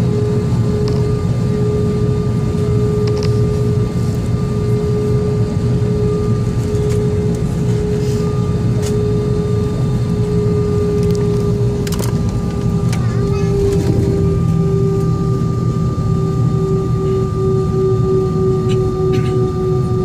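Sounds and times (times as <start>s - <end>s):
aircraft cabin drone: 0.0s - 20.0s.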